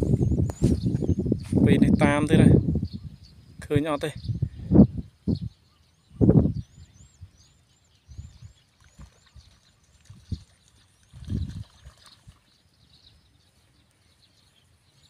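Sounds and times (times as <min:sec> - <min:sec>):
bird chirping: 0:00.0 - 0:15.0.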